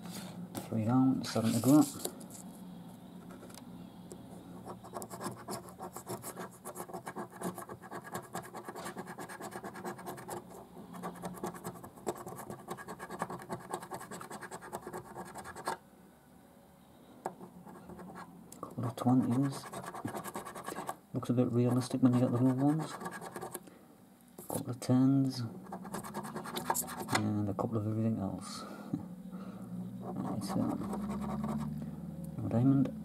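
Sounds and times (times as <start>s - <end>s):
coin scraping a scratchcard: 21.7s - 23.6s, 25.7s - 27.2s, 30.0s - 31.7s.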